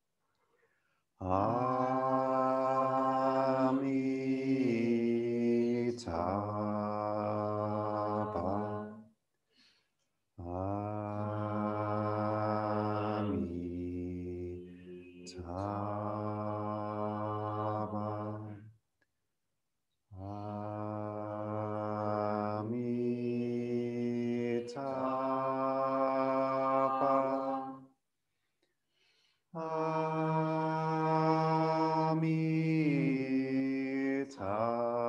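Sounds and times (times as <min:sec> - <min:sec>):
man and woman chanting: 0:01.2 - 0:09.0, 0:10.4 - 0:18.6, 0:20.2 - 0:27.9, 0:29.6 - 0:35.0.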